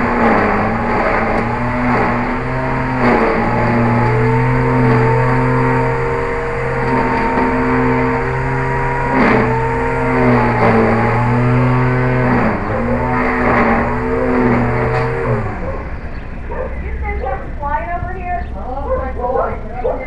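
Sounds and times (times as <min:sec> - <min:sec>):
drone propellers buzzing: 0:00.0 - 0:20.0.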